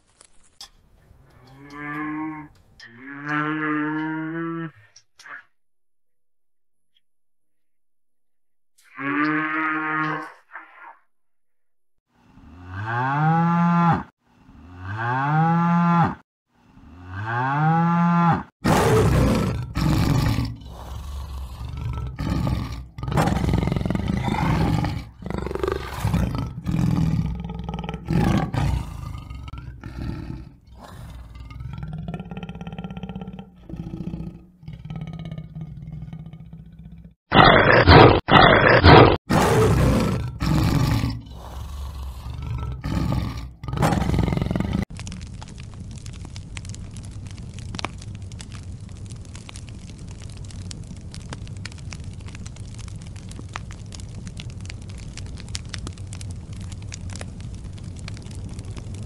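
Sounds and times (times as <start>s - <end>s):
cattle mooing: 1.4s - 4.9s, 8.8s - 10.4s
tiger roaring and growling: 16.8s - 45.0s.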